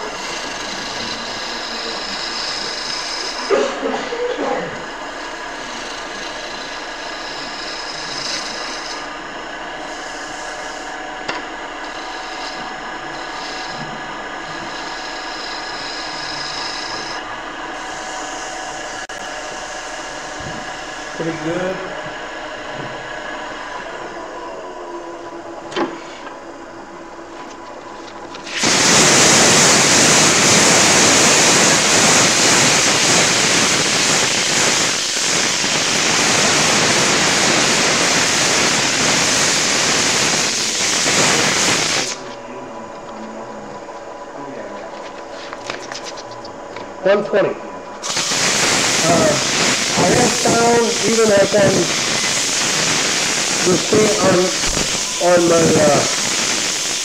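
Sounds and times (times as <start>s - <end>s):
turning tool cutting wood: 0.0s - 3.6s, 4.8s - 23.6s, 28.4s - 42.2s, 48.0s - 57.0s
sanding hiss on spinning wood: 0.0s - 23.6s, 28.5s - 42.2s, 48.0s - 57.0s
wood lathe motor whine: 0.0s - 42.4s, 45.5s - 57.0s.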